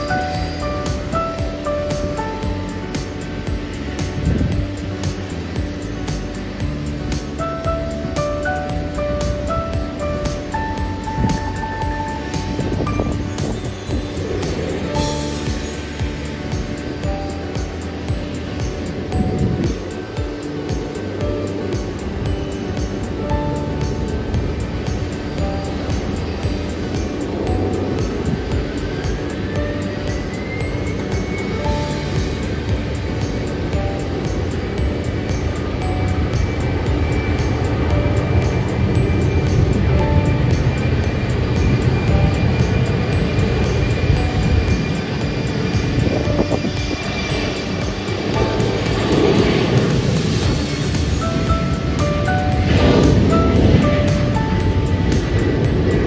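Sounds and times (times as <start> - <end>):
background music: 0.0 - 56.0
jet airliners noise: 0.0 - 56.0
jet engine whine rising: 0.0 - 56.0.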